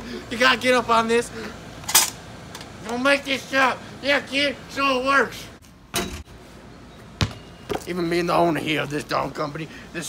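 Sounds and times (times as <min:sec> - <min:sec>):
basketball thump: 0:07.2 - 0:07.8.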